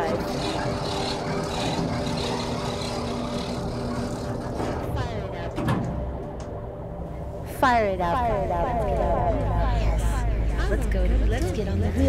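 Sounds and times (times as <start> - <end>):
engine-like rumble with low hum: 0.0 - 12.0
faint voices: 8.0 - 12.0.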